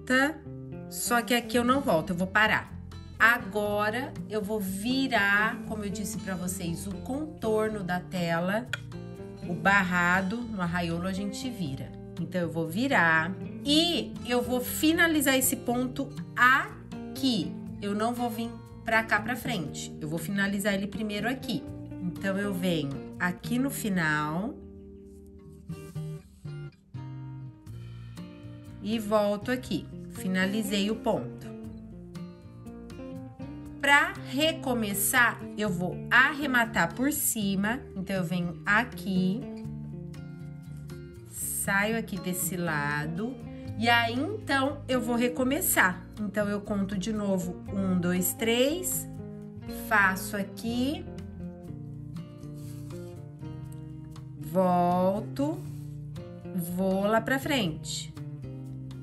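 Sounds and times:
acoustic guitar notes plucked: 0:00.0 - 0:59.0
soft background music: 0:00.0 - 0:59.0
yarn rasping through canvas: 0:52.6 - 0:53.2.

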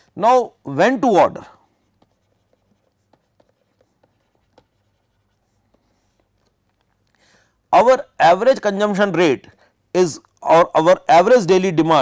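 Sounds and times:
stylus tapping on pen tablet: 0:01.9 - 0:06.9.

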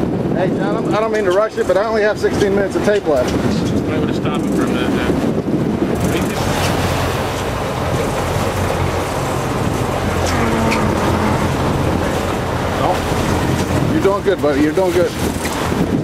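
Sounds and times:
boat engines running: 0:00.0 - 0:16.0
water noise: 0:00.0 - 0:16.0
wind noise on microphone: 0:00.0 - 0:16.0.

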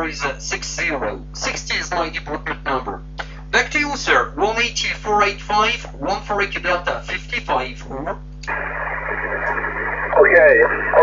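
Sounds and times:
radio static hiss: 0:00.0 - 0:11.0
steady low hum: 0:00.0 - 0:11.0.

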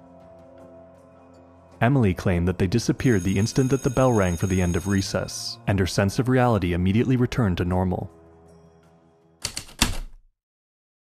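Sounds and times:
faint music: 0:00.0 - 0:09.0
typewriter key strikes: 0:09.4 - 0:10.2.

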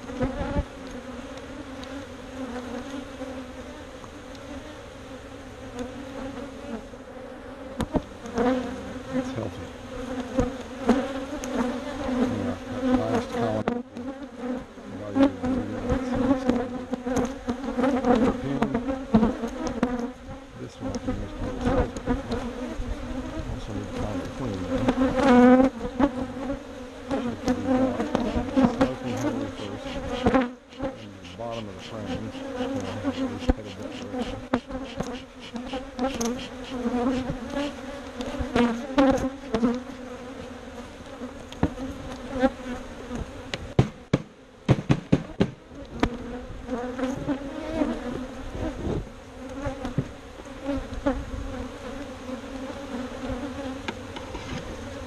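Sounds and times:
bees buzzing: 0:00.0 - 0:55.0
knocks and scrapes of hive boxes: 0:07.6 - 0:55.0.

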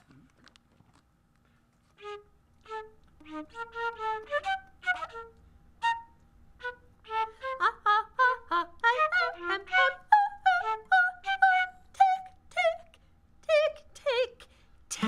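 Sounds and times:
flute playing short notes: 0:02.0 - 0:12.9.

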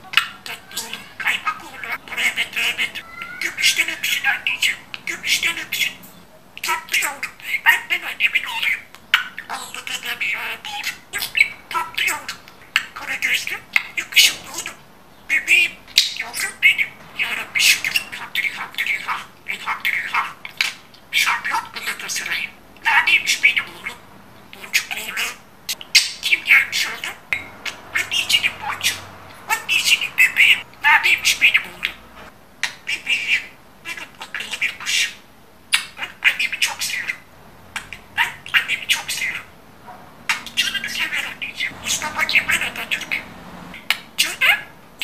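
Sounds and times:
budgerigar warbling and chattering: 0:00.0 - 0:39.5, 0:40.3 - 0:44.8.

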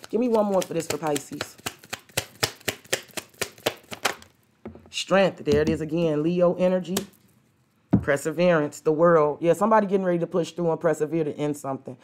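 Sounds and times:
cards being shuffled: 0:00.0 - 0:04.4.

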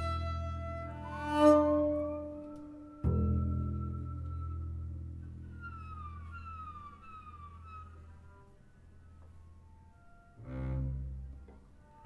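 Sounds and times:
bowed double basses: 0:00.0 - 0:12.0
high bowed gliding tones: 0:00.0 - 0:12.0.

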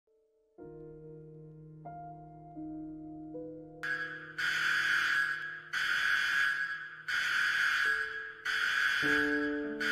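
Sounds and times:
soft background music: 0:00.1 - 0:09.9.

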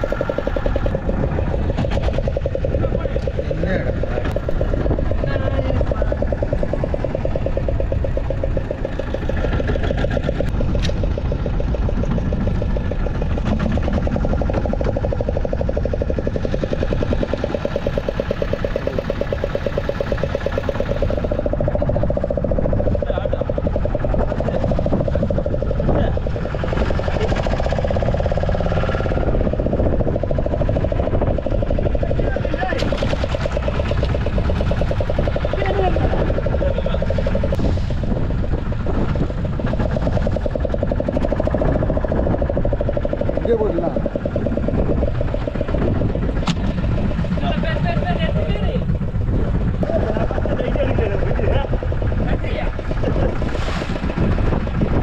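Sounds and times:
boat engine running: 0:00.0 - 0:55.0
sea noise: 0:00.0 - 0:55.0
wind: 0:00.0 - 0:55.0.

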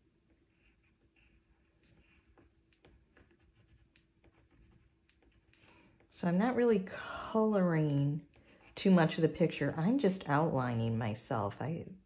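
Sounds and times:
pencil scratching on paper: 0:00.3 - 0:06.1, 0:07.9 - 0:09.2.

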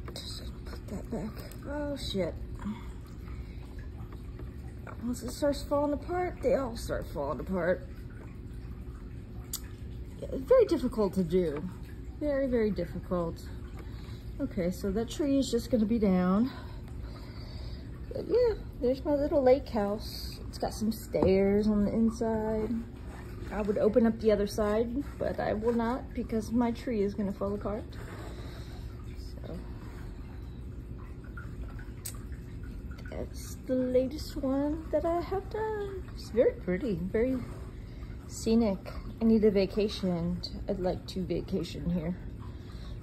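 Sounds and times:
room hum: 0:00.0 - 0:43.0.

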